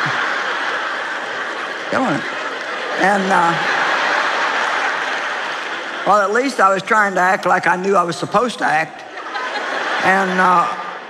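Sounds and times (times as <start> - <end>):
large audience applauding: 0.0 - 8.0.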